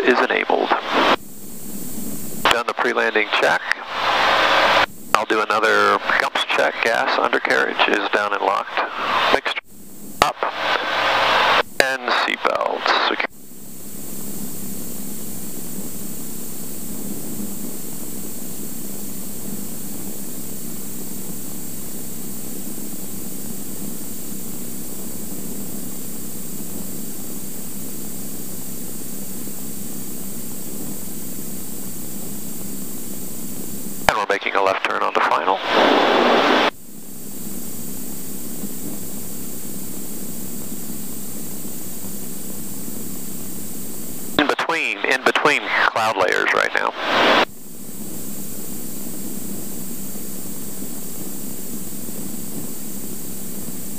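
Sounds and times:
aircraft engine drone in cockpit: 0.0 - 53.9
bursts of voice: 34.1 - 36.4, 44.4 - 47.1.

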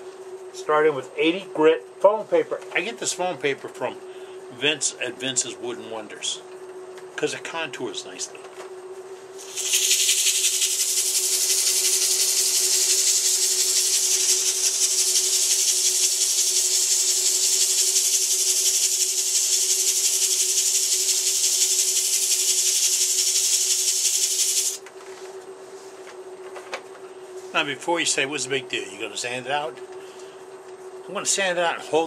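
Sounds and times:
lathe hum: 9.4 - 24.8
sandpaper hissing on spinning wood: 9.4 - 24.8.

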